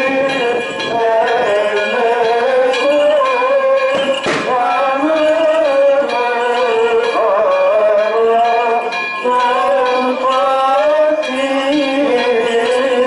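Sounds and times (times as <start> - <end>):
man chanting over loudspeakers: 0.0 - 13.0.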